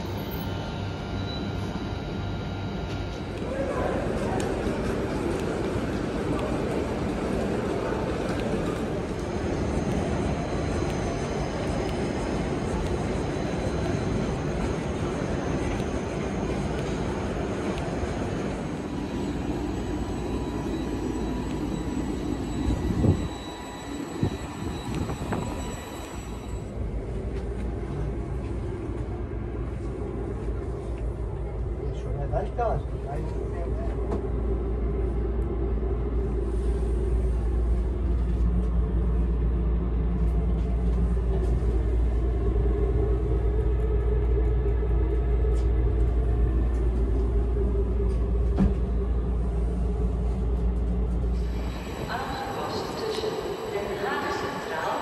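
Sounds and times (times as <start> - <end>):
high steady whines: 0.0 - 55.0
steady train hum: 0.0 - 55.0.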